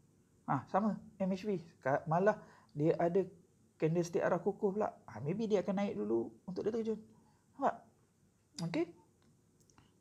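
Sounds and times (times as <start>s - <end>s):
man speaking: 0.5s - 7.9s, 8.6s - 9.0s.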